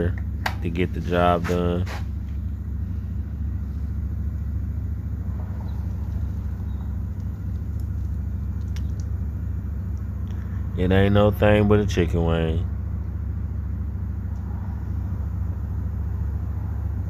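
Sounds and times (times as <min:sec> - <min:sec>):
steady low rumble: 0:00.0 - 0:17.0
faint clicks: 0:07.1 - 0:09.2.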